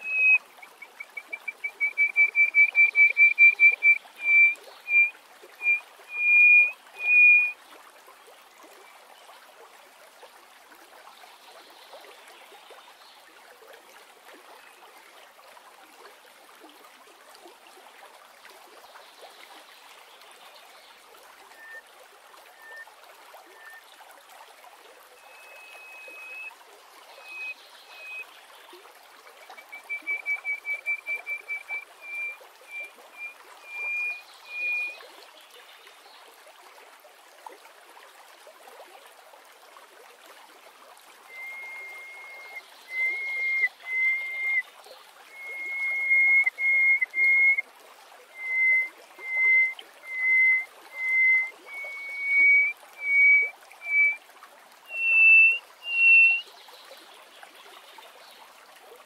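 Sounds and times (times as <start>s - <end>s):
lark singing whistled notes: 0.0s - 7.6s, 21.6s - 21.8s, 22.6s - 22.9s, 23.6s - 23.8s, 25.2s - 26.5s, 27.2s - 28.2s, 29.5s - 35.0s, 41.3s - 44.7s, 45.3s - 47.6s, 48.3s - 54.2s, 54.9s - 56.5s.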